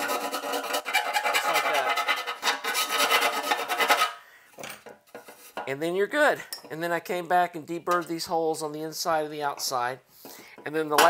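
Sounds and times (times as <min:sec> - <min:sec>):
file rasping on sheet metal: 0:00.0 - 0:04.2.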